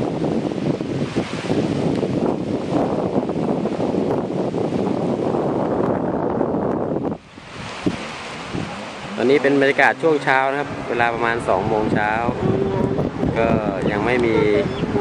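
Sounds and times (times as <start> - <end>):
waves washing onto beach: 0.0 - 15.0
wind buffeting microphone: 0.0 - 15.0.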